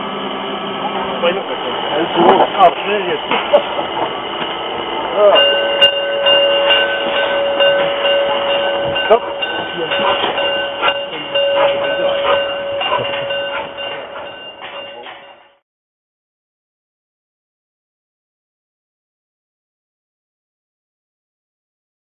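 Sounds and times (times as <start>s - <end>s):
steam locomotive moving slowly: 0.0s - 15.6s.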